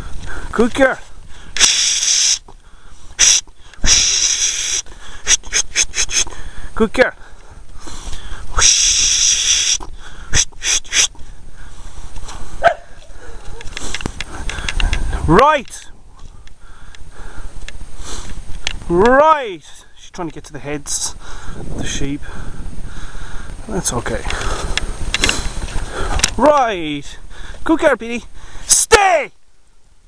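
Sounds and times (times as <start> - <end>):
short breaths: 0.0 - 15.2, 16.1 - 18.4, 21.1 - 23.6, 24.2 - 26.4, 27.1 - 27.7, 28.3 - 28.7
person shushing: 1.6 - 2.5, 3.2 - 6.3, 8.5 - 11.2
wind rumble: 2.4 - 19.2, 19.9 - 28.6
microphone handling noise: 7.6 - 19.2, 21.6 - 26.4.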